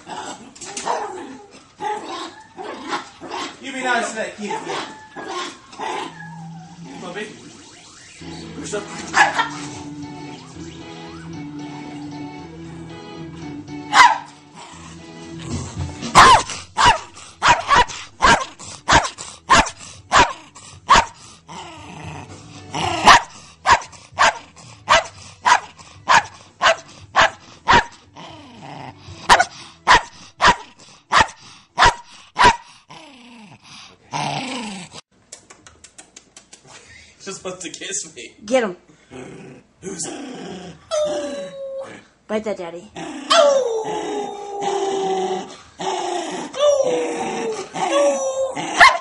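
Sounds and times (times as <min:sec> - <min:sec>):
dog barking sharply: 0:09.2 - 0:09.5, 0:13.9 - 0:14.3, 0:16.2 - 0:21.1, 0:29.3 - 0:32.6, 0:48.8 - 0:49.0.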